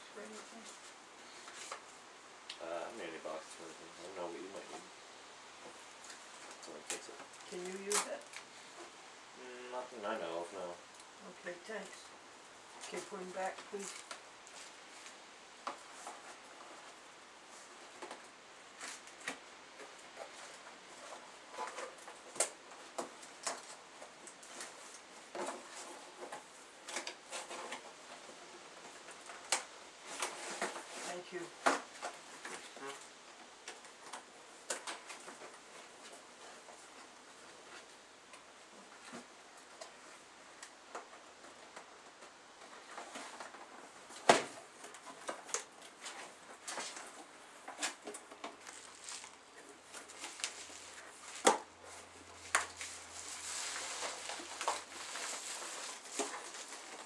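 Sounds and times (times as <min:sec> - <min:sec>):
plastic and paper rustling: 0:05.7 - 0:08.9, 0:12.8 - 0:17.0, 0:17.6 - 0:38.0, 0:38.7 - 0:57.0
paper rustling: 0:42.6 - 0:57.0.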